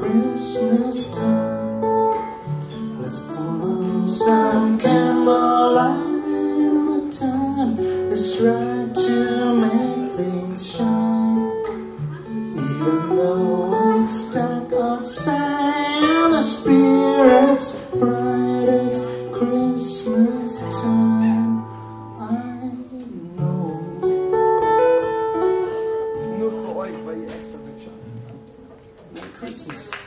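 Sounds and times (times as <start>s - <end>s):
man singing: 0.0s - 1.8s, 2.8s - 24.5s
strummed acoustic guitar: 0.0s - 29.0s.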